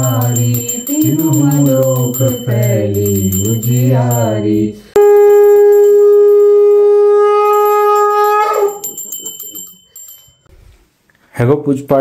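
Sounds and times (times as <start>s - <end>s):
conch shell blown: 5.0s - 9.1s.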